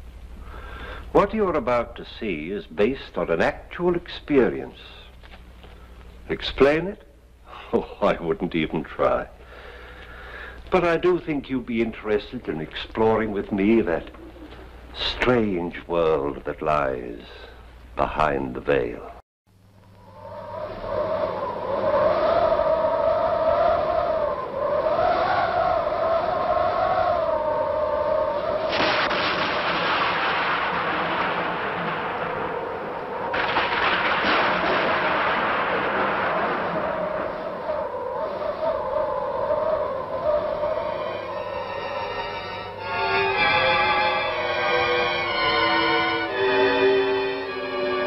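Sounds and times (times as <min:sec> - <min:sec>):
howling wind: 0:11.8 - 0:16.0, 0:19.8 - 0:45.7
loud rush of gusting wind: 0:20.0 - 0:41.7.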